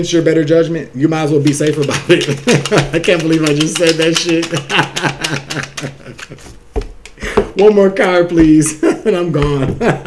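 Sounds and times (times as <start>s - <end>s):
cards being shuffled: 1.4s - 7.2s
man laughing: 1.9s - 6.6s, 8.6s - 10.0s.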